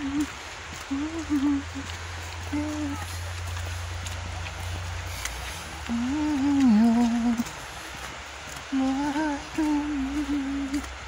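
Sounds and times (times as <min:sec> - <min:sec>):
person humming a tune: 0:00.0 - 0:03.1, 0:05.9 - 0:07.6, 0:08.7 - 0:10.9.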